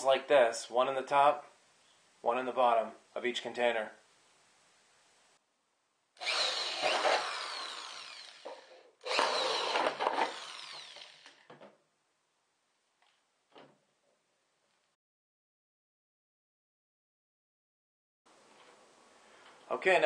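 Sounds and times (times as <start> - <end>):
electric drill drilling plastic: 6.2 - 11.5.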